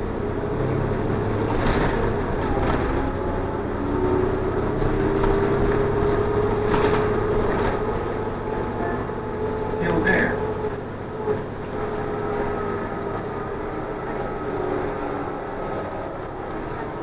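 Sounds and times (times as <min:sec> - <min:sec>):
bus engine running: 0:00.0 - 0:17.0
road noise: 0:00.0 - 0:17.0.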